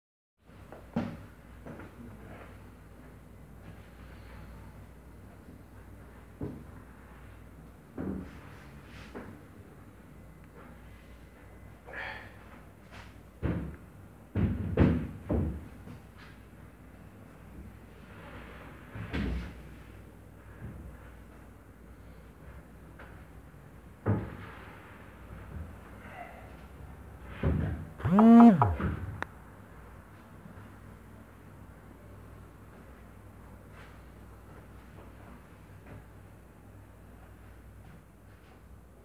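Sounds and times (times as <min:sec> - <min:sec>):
sharp knock: 0:28.0 - 0:29.2.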